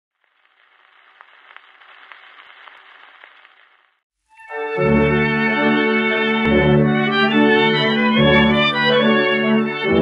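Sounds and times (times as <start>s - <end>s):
record surface hiss and crackle: 0.1s - 4.4s
sharp record clicks: 0.2s - 4.0s.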